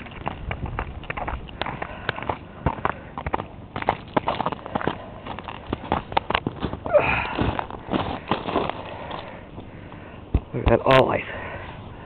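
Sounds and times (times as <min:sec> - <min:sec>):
footsteps crunching on icy snow: 0:00.0 - 0:09.8.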